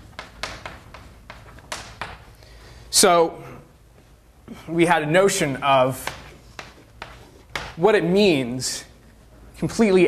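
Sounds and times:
chalk tapping on blackboard: 0.0s - 2.4s, 5.9s - 7.8s.

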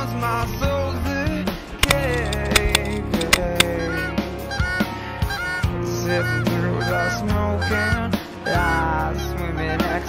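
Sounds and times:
background music with low notes: 0.0s - 10.0s
goose honks: 3.8s - 9.0s.

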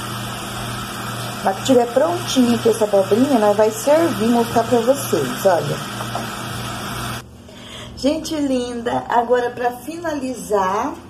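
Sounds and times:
vegetables sizzling in a pot: 0.0s - 7.2s.

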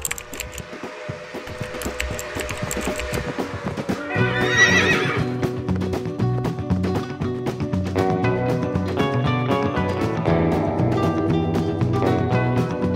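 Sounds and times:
outro music: 0.0s - 12.9s
horse whinny: 4.0s - 5.4s.

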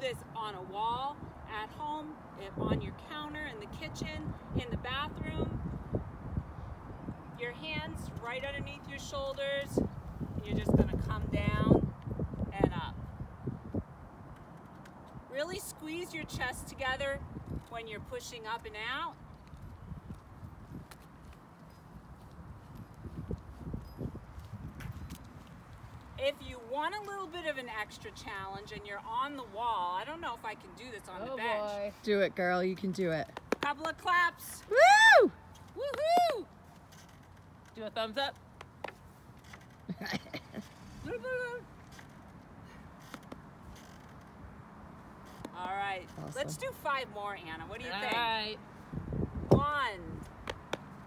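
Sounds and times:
wind rumble on microphone: 0.1s - 14.4s, 15.0s - 26.6s, 47.5s - 51.0s.

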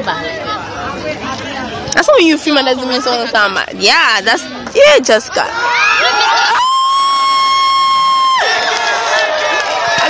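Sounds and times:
crowd voices and shouting: 0.0s - 10.0s.

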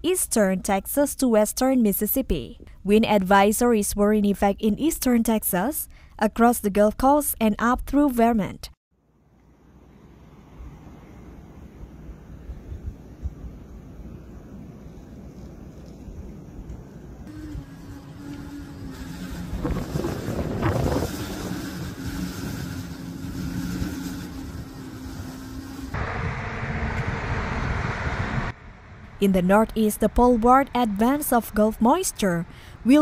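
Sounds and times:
steady low hum: 9.0s - 32.9s
storm wind buffeting microphone: 11.7s - 14.9s, 17.4s - 29.2s.

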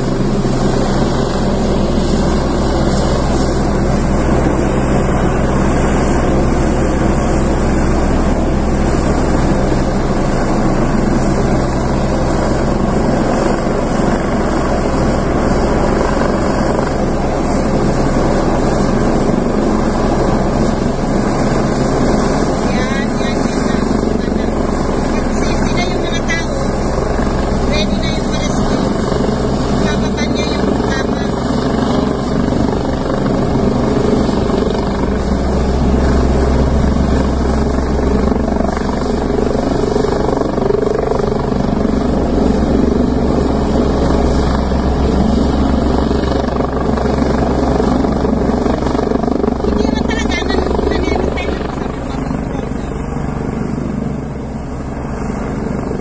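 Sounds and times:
helicopter rotor and engine drone: 0.0s - 56.0s.

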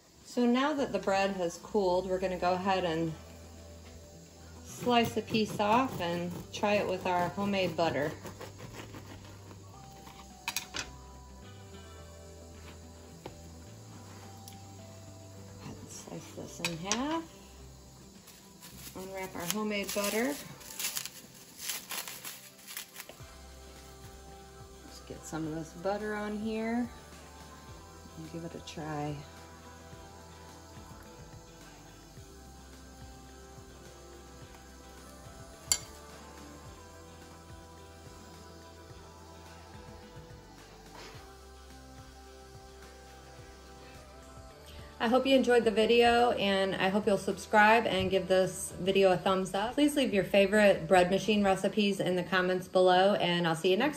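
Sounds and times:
soft background music: 0.0s - 53.9s
butter knife scraping bread: 4.7s - 10.4s
metal knife clinking down: 35.7s - 36.0s.

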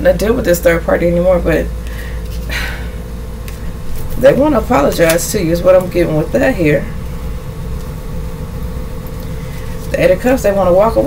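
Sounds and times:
faint even hum: 0.0s - 11.0s.

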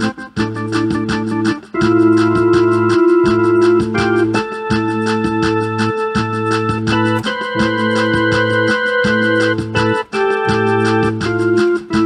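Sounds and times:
bass line: 0.0s - 12.0s
electronic keyboard chords: 0.0s - 12.0s
fast ticking beat: 0.0s - 12.0s.

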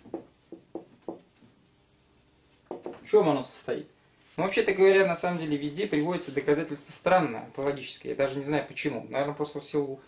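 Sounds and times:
marker pen writing on whiteboard: 0.0s - 3.0s.

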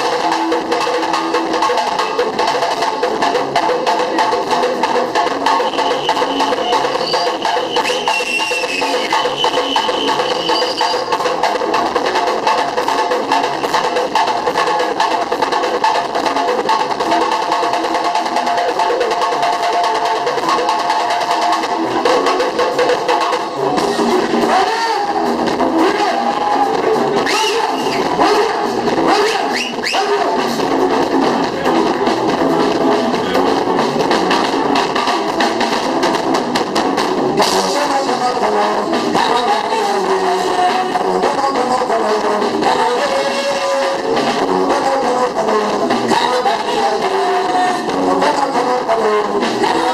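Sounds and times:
fast percussion strokes: 0.0s - 49.9s
live band music: 0.0s - 49.9s.

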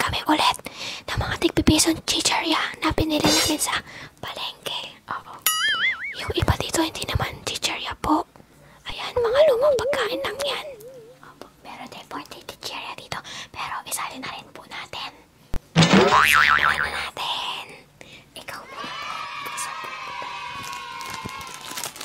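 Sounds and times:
high-pitched tone: 5.5s - 6.4s, 9.3s - 11.2s
person whispering: 8.9s - 11.3s
voice sliding up in pitch: 9.2s - 11.2s
mouth clicks: 9.4s - 11.2s.

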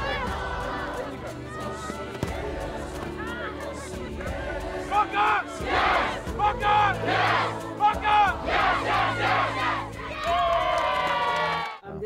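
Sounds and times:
children and men chanting: 0.0s - 11.8s.

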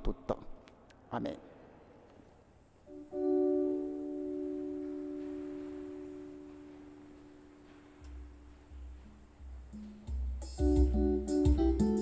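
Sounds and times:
electronic keyboard chord: 2.9s - 12.0s.

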